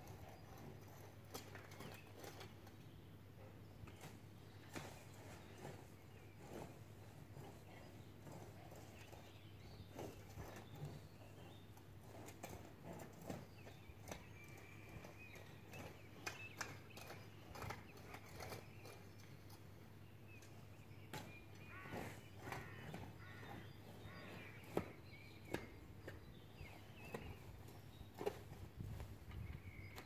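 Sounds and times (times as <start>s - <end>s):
hoe chopping and scraping soil: 0.0s - 3.0s, 3.9s - 19.7s, 20.3s - 30.0s.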